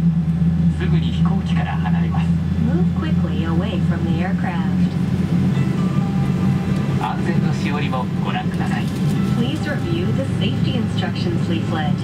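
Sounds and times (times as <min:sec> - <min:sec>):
low aircraft cabin hum: 0:00.0 - 0:12.0.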